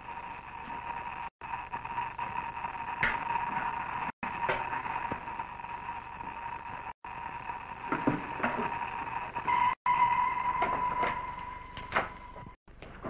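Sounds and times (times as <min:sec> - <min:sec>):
steady high-pitched tone: 0:00.0 - 0:12.6.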